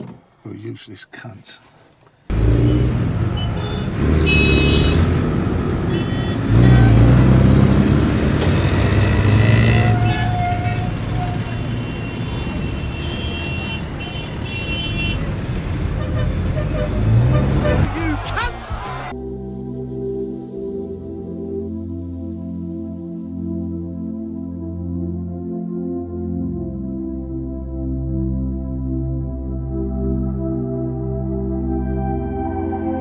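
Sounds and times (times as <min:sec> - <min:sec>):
car road and wind noise: 0:02.1 - 0:19.1.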